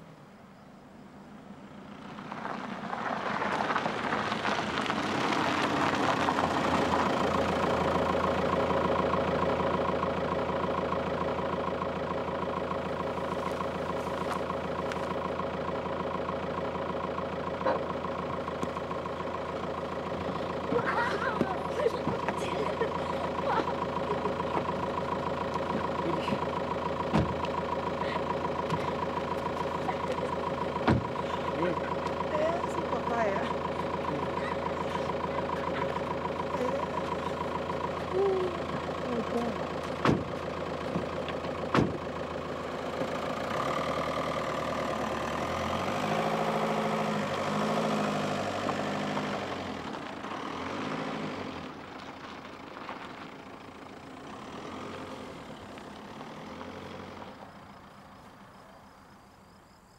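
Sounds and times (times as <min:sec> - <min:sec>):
car engine idling: 0:00.0 - 0:59.9.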